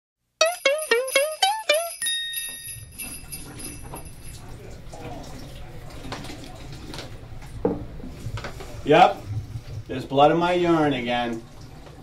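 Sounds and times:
jingle-bell chord: 0.4s - 4.3s.

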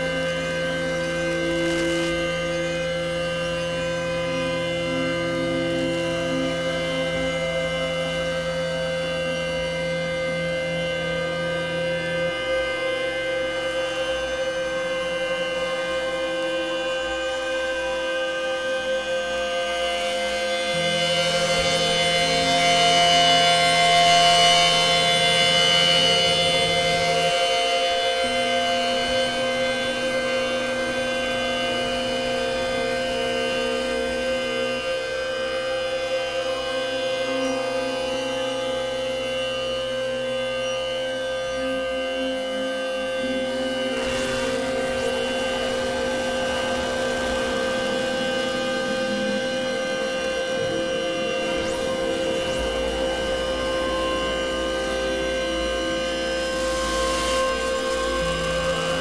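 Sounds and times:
ambient synthesizer drone: 0.0s - 59.0s.

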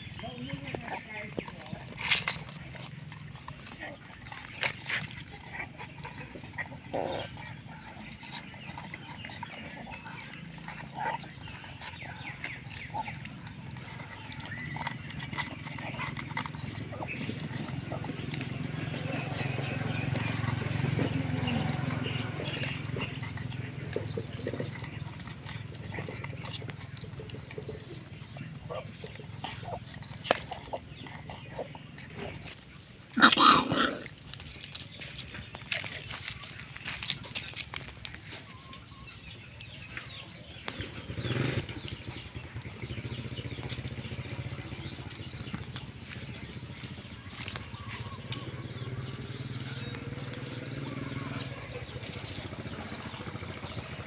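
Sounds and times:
teeth clicking on plastic bowls: 0.0s - 33.4s
puppies chewing and lapping: 0.0s - 54.0s.

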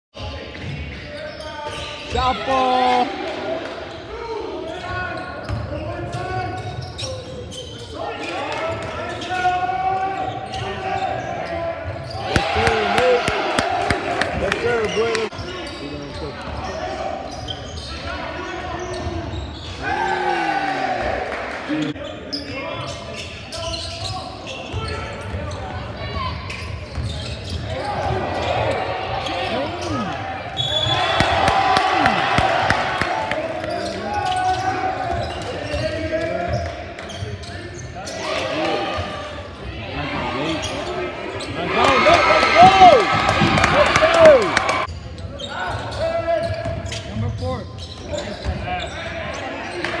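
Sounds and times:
players and coaches calling out: 0.6s - 50.0s.

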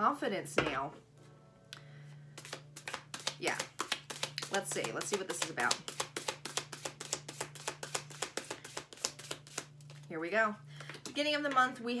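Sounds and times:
low steady hum: 0.0s - 12.0s
cards being shuffled: 2.4s - 10.1s.

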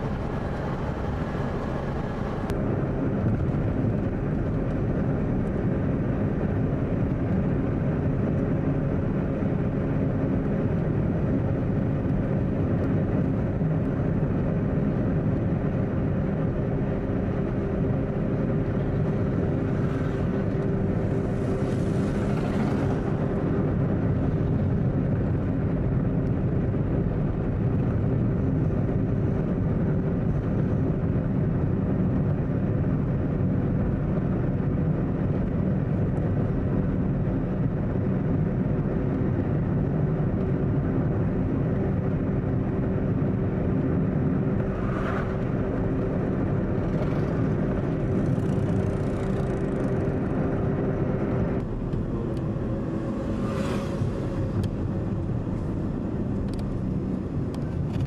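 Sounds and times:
vehicle engine drone: 0.0s - 58.0s.

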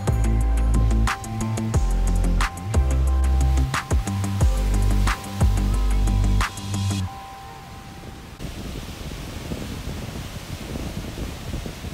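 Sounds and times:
held music notes: 0.0s - 8.4s
wind buffeting microphone: 7.8s - 11.9s.

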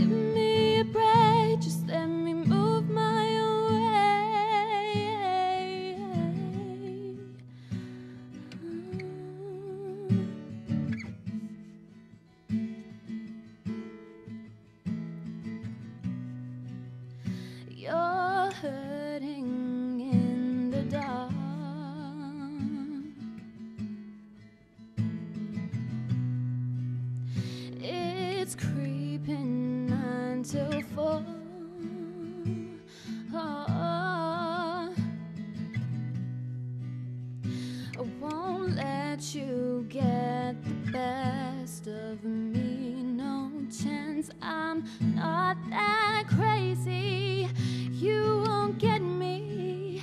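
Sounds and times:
woman singing with vibrato: 0.0s - 7.4s, 8.6s - 10.3s, 17.7s - 23.2s, 27.8s - 35.0s, 38.0s - 50.0s
acoustic guitar strumming: 18.4s - 50.0s.

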